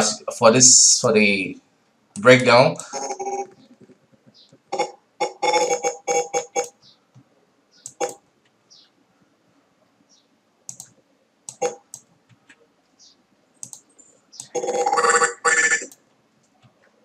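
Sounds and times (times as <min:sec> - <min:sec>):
computer mouse clicks: 0:06.6 - 0:08.6, 0:10.7 - 0:12.6, 0:13.6 - 0:14.6
keyboard key presses: 0:10.7 - 0:12.6, 0:13.6 - 0:14.6.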